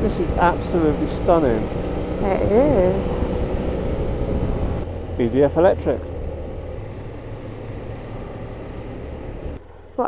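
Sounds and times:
motorcycle engine hum: 0.0 - 10.0
wind and road noise: 0.0 - 10.0.

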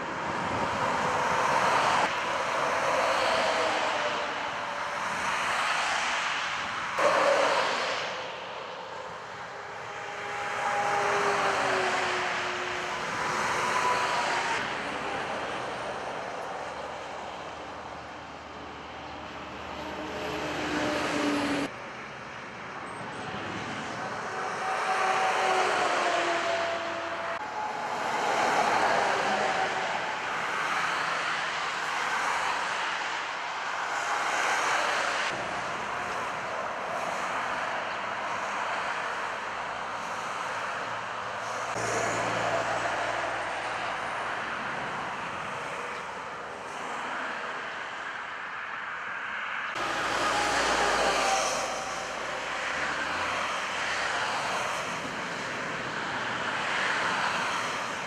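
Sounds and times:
motorway traffic passing at speed: 0.0 - 58.0.

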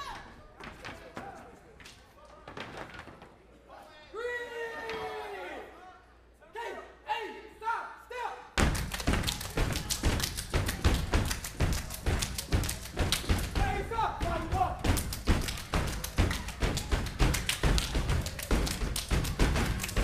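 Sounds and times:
people clapping in unison: 8.6 - 20.0.

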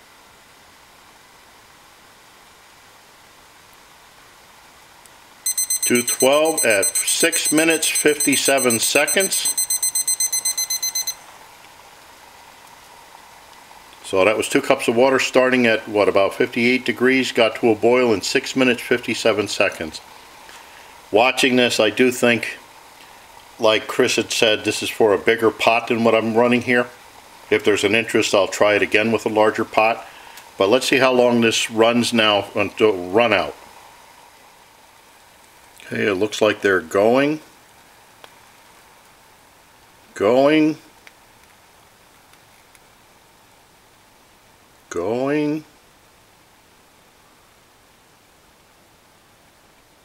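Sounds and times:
faint steady hiss: 0.0 - 50.0
thermometer alarm beeping: 5.5 - 11.3.

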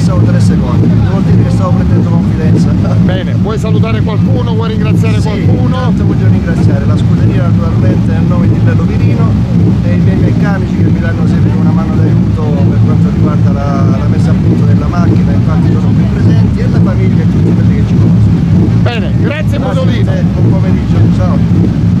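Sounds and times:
man talking: 0.0 - 21.6
car engine running: 0.0 - 22.0.

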